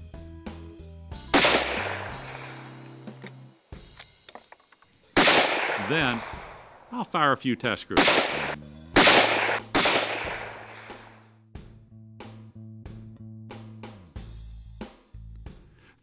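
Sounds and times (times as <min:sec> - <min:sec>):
background music: 0:00.0 - 0:15.9
rifle shots echoing: 0:01.3 - 0:03.0, 0:05.2 - 0:06.9, 0:07.9 - 0:11.2.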